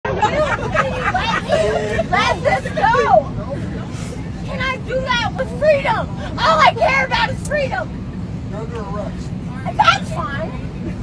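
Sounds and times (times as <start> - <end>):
steady low hum: 0.1 - 11.0
people talking loudly: 0.3 - 11.0.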